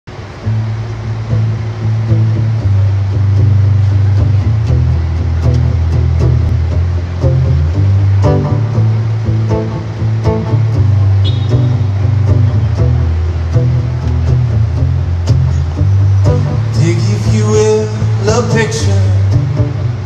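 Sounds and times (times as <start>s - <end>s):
sustained low bass notes: 0.1s - 20.0s
plucked acoustic guitar: 0.4s - 20.0s.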